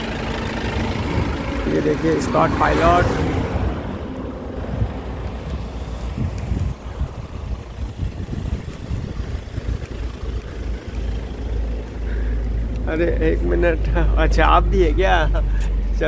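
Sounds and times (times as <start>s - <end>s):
vehicle engine and tyre noise: 0.0s - 16.0s
wind buffeting the microphone: 0.6s - 11.2s.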